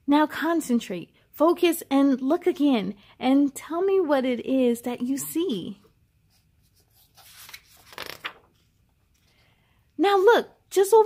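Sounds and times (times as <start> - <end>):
book page rustling: 6.3 - 9.4.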